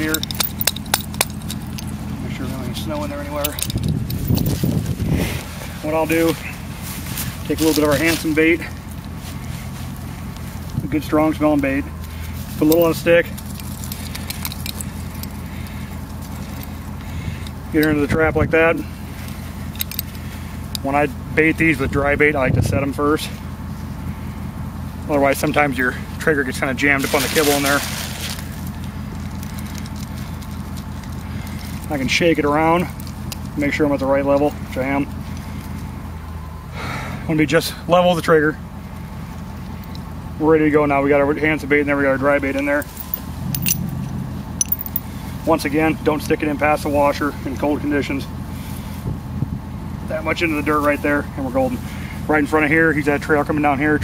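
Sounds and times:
metallic clicks of trap handled: 0:00.0 - 0:02.0, 0:03.4 - 0:04.7, 0:13.6 - 0:15.8, 0:19.7 - 0:20.8, 0:42.6 - 0:44.0, 0:44.6 - 0:45.1
steady low rumble: 0:00.0 - 0:54.0.

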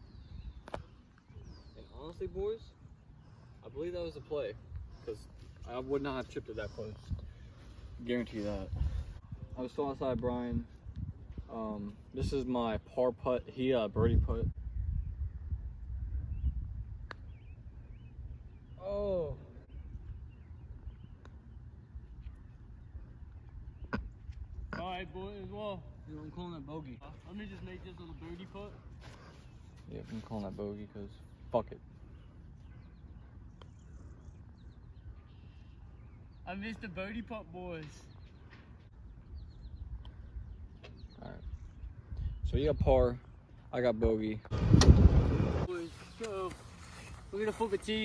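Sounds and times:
faint bird chirps: 0:00.0 - 0:09.9, 0:14.6 - 0:43.8
wind rumble on microphone: 0:08.5 - 0:13.0, 0:13.8 - 0:18.7, 0:39.1 - 0:43.2, 0:44.4 - 0:46.0.

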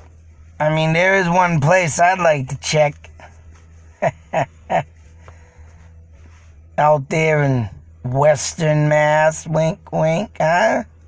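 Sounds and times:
man chuckling: 0:03.9 - 0:05.2.

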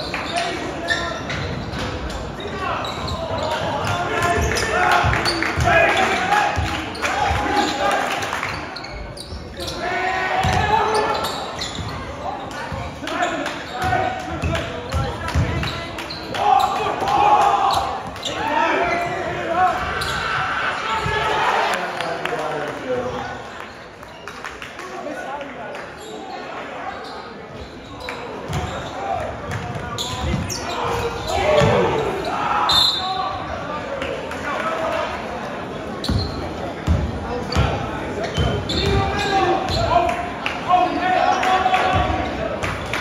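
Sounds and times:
spectators talking and shouting: 0:00.0 - 0:43.0.

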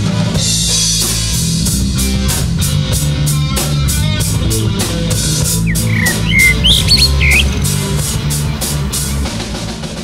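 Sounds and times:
high squealing chirps: 0:05.6 - 0:08.1.

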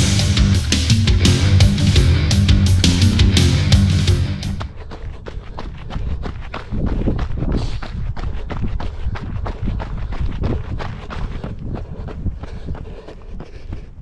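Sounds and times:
running footsteps on gravel: 0:03.1 - 0:14.0.

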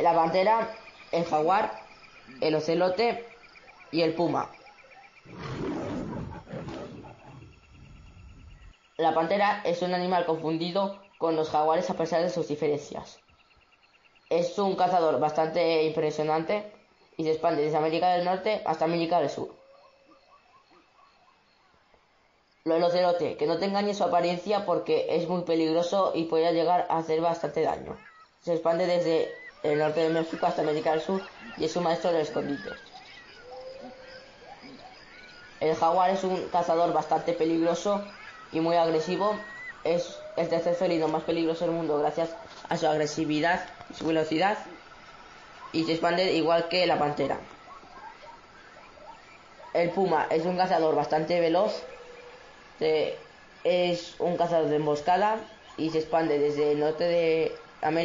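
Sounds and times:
big cat roaring: 0:05.2 - 0:08.7.

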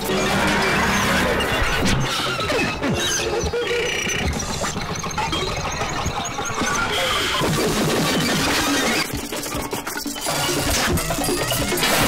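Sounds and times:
crackling experimental noise music: 0:00.0 - 0:12.0.

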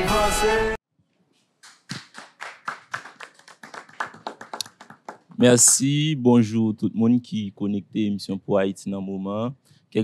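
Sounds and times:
small audience clapping: 0:01.6 - 0:06.0.

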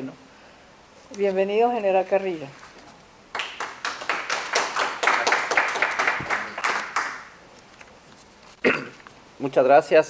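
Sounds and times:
audience clapping: 0:03.3 - 0:07.4.

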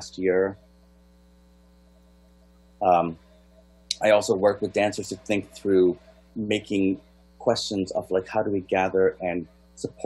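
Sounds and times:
man saying um: 0:00.0 - 0:00.6, 0:02.8 - 0:03.2, 0:03.9 - 0:10.0
faint electrical mains hum: 0:00.0 - 0:10.0.

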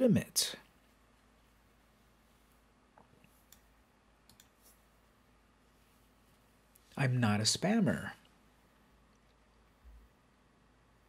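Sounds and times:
computer mouse click: 0:03.2 - 0:04.6.

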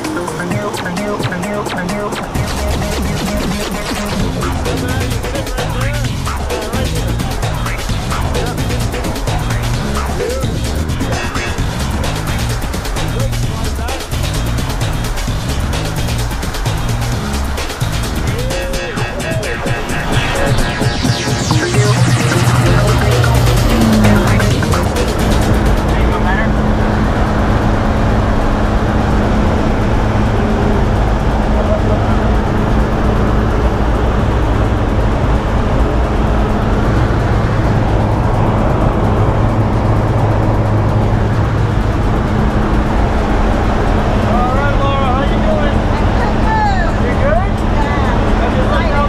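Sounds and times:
propeller plane drone in cabin: 0:00.0 - 0:49.0
voices and laughter: 0:04.0 - 0:14.0.

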